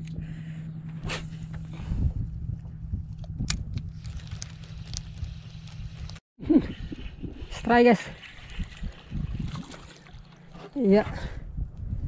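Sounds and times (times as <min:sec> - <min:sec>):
small boat engine running: 0:00.0 - 0:03.0, 0:07.0 - 0:11.5.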